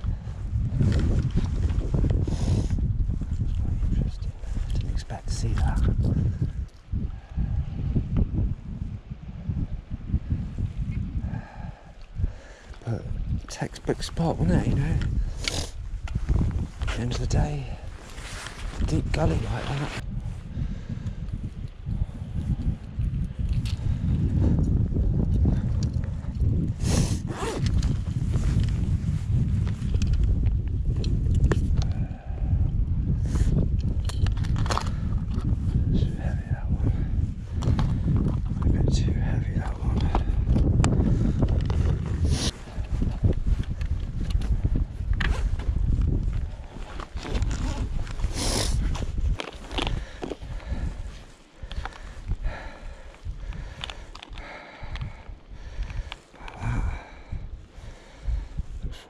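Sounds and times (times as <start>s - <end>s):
wind buffeting microphone: 0.0s - 59.0s
clicks and rustles of fishing line: 22.8s - 23.9s, 29.6s - 32.0s, 33.7s - 35.6s, 39.6s - 52.3s, 53.1s - 56.6s.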